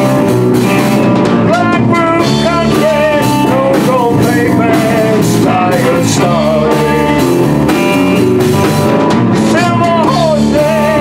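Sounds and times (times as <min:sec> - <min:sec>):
drum kit: 0:00.0 - 0:11.0
electric guitars with bent notes: 0:00.0 - 0:11.0.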